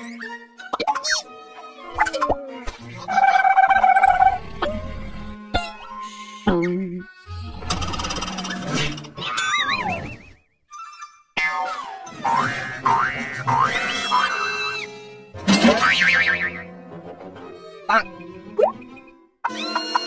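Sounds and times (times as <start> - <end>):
boing comic sound effects: 15.5 - 16.6.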